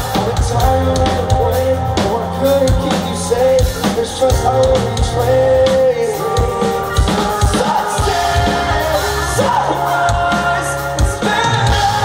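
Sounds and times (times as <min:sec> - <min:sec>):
drum kit: 0:00.0 - 0:12.0
electric guitars: 0:00.0 - 0:12.0
lead vocal singing: 0:00.0 - 0:12.0.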